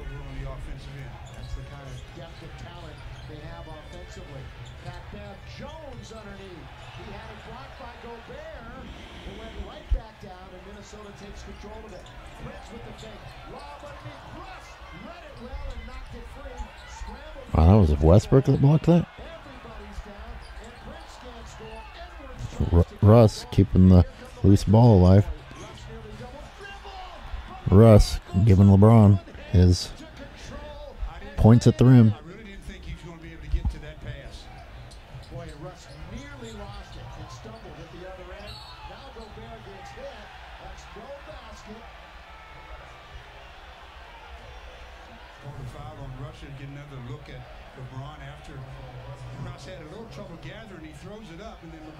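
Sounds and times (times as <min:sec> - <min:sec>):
arena crowd noise: 0:00.0 - 0:51.9
indistinct voices: 0:22.4 - 0:25.3, 0:27.7 - 0:29.9, 0:31.4 - 0:32.1.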